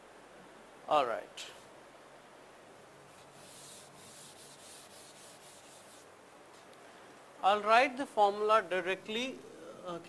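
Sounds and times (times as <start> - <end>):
chalk scratching on chalkboard: 3.2 - 6.1.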